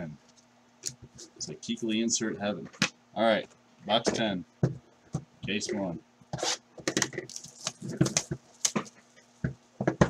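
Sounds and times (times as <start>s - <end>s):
wrapping and cardboard crinkling: 7.2s - 9.1s.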